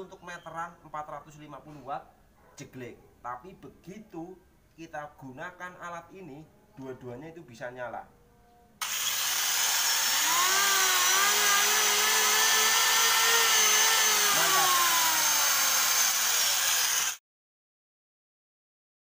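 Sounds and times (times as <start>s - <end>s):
angle grinder whining: 8.8s - 17.2s
electric hand planer running: 8.8s - 17.2s.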